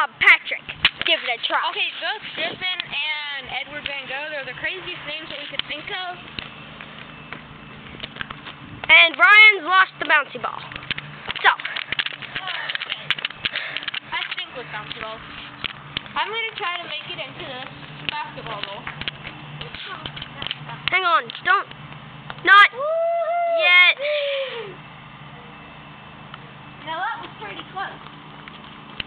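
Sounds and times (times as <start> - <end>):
low steady background hum: 0.0 - 29.0.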